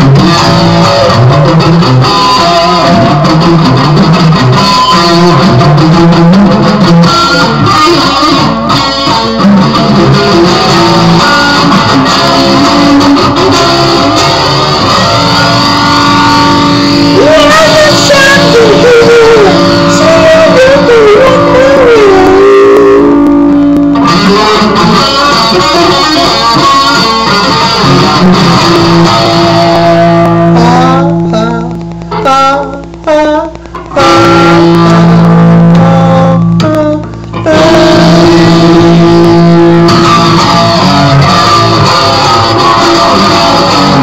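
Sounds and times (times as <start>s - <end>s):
electric guitar sustained note: 0.0s - 44.0s.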